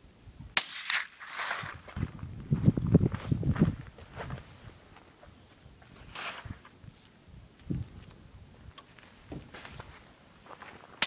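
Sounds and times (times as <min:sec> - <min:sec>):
rifle shot crack: 0:00.6 - 0:01.8
low knocks and rustling: 0:08.8 - 0:10.0.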